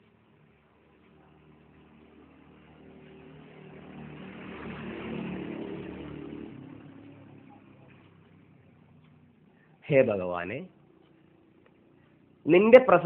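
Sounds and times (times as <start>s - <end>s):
motor vehicle passing by: 0.0s - 13.0s.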